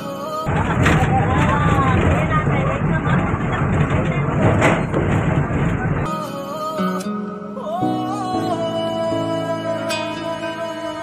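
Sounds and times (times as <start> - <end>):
bus engine and road rumble: 0.0 - 11.0
rattling: 0.5 - 6.1.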